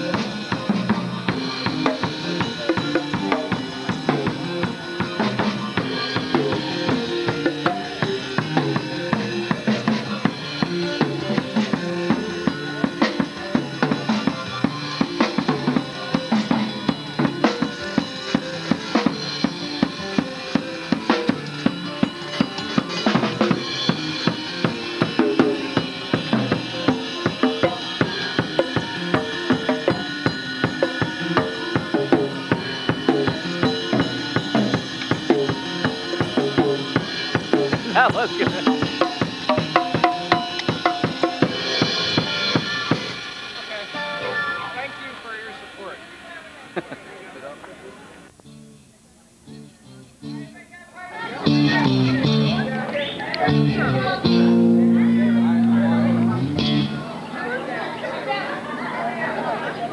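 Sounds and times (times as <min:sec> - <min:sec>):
drum kit beat: 0:00.0 - 0:44.1.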